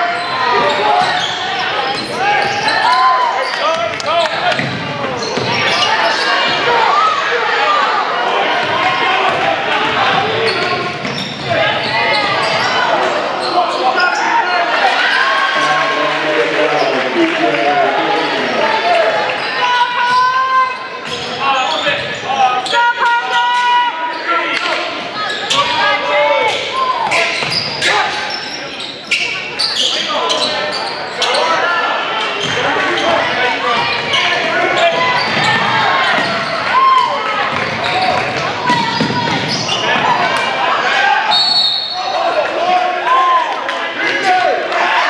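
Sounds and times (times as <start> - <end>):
sneakers squeaking: 0.0 - 7.2, 8.6 - 15.8, 19.2 - 42.4
players and crowd voices: 0.0 - 45.0
referee whistle blast: 41.3 - 42.2.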